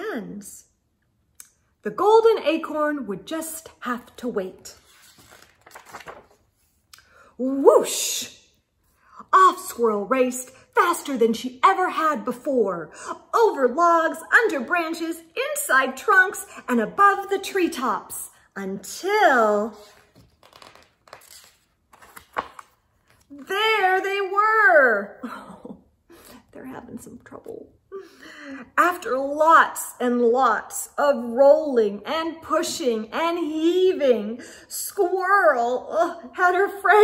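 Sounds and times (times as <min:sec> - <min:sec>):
paper rustling of page turning: 0:04.6 - 0:06.8, 0:19.7 - 0:23.5.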